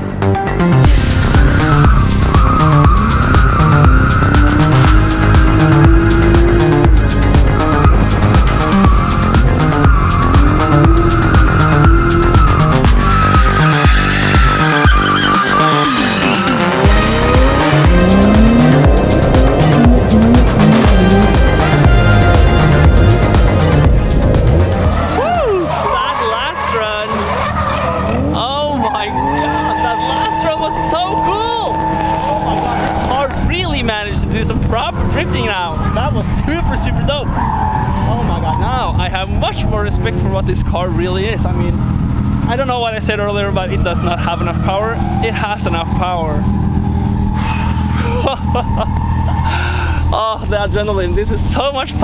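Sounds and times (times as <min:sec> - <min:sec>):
car engines running: 0:00.4 - 0:52.0
tyres squealing: 0:01.3 - 0:22.2, 0:24.6 - 0:33.4.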